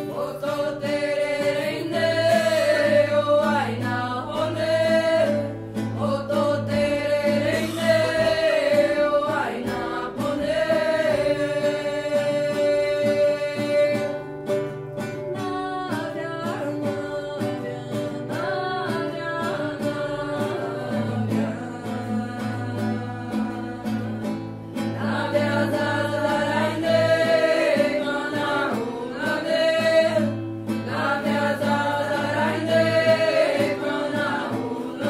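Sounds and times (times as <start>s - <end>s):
voices singing a slow chant: 0.0s - 14.2s, 15.9s - 35.0s
guitar: 0.0s - 35.0s.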